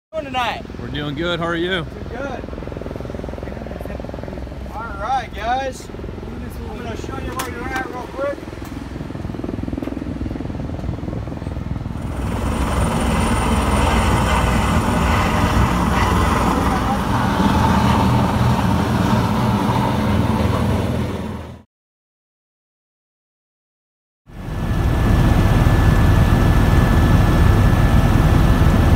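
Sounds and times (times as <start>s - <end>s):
helicopter turbine and rotor: 0.2s - 21.7s, 24.3s - 28.9s.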